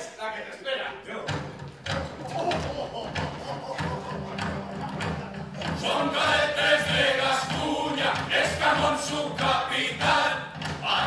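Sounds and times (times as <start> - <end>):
actors' voices: 0.0 - 11.0.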